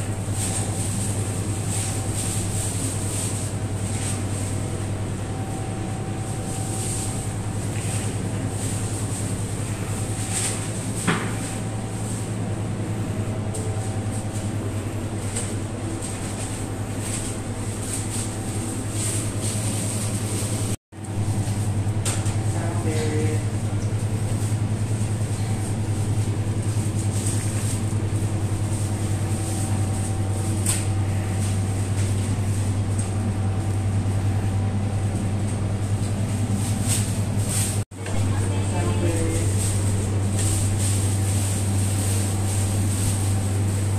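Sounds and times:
low hum with fast flutter: 0.0s - 43.9s.

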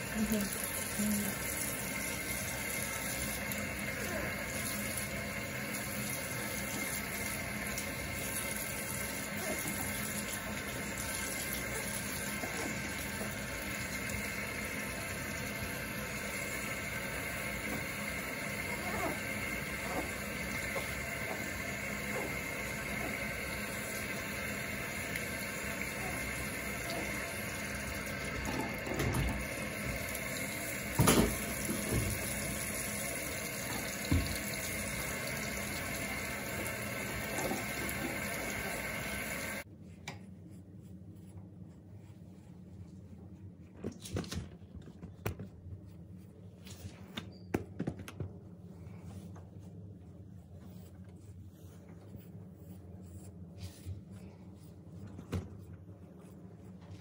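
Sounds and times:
faucet running into sink: 0.0s - 39.6s.

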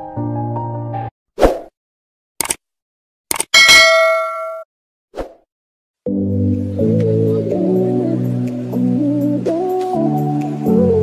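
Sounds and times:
quick clicks: 2.4s - 2.6s, 3.3s - 3.5s
bright bell-like ding: 3.6s - 4.6s.

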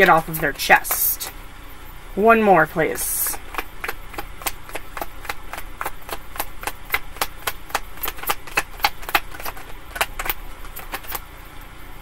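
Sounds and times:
cards being shuffled: 3.2s - 11.3s.

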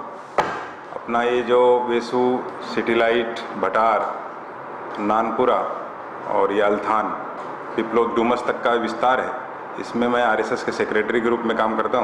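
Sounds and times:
man speaking: 0.9s - 4.3s, 5.0s - 12.0s.

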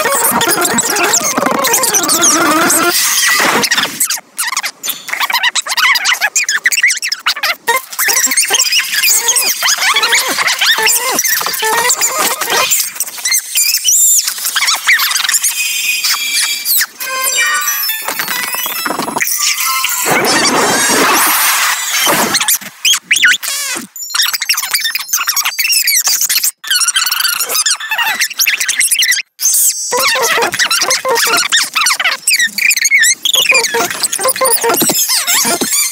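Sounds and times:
sped-up cartoon voices: 0.0s - 13.4s, 29.9s - 35.9s
sped-up cartoon voices and music: 29.9s - 35.9s.

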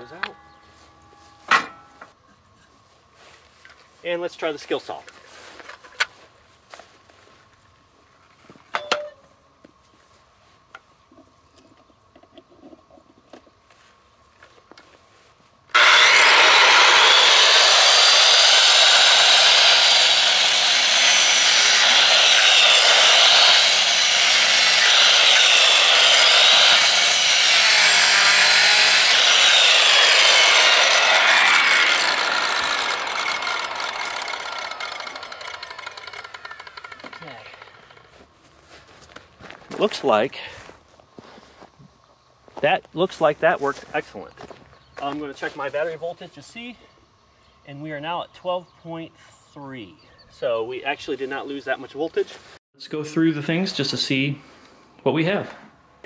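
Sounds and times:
circular saw cutting wood: 15.7s - 38.2s.

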